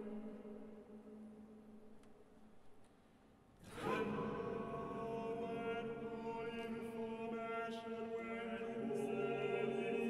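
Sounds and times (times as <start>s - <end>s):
vocal ensemble singing a drone: 3.7s - 10.0s.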